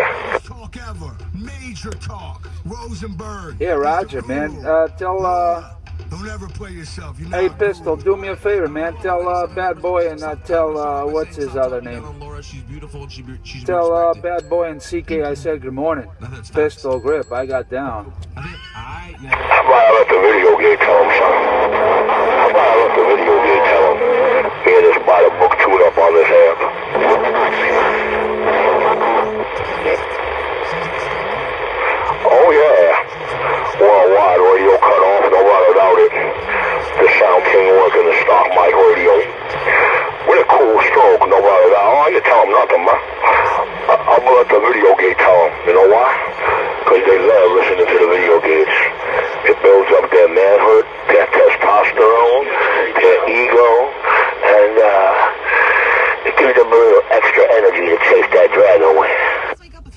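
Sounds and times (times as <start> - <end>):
steady low tone: 0.0 - 54.5
radio static hiss: 0.0 - 59.9
voices over radio speaker: 0.0 - 59.9.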